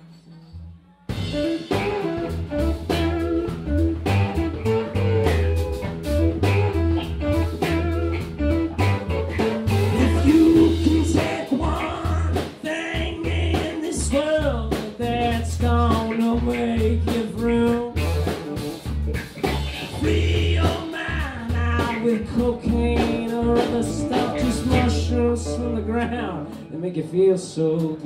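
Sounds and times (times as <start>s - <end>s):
bass and drums beat: 1.1s - 26.5s
man singing: 9.9s - 18.1s, 20.0s - 28.0s.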